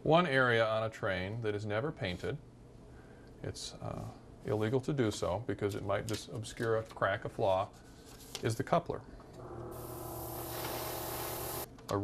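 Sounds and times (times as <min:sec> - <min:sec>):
airbrush spraying hiss: 0:09.8 - 0:11.7.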